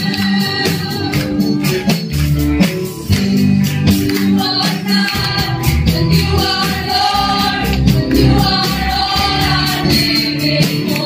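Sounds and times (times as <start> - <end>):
amplified music with percussion beat: 0.0 - 11.0
voices singing along: 4.2 - 11.0
woman singing lead: 4.3 - 11.0.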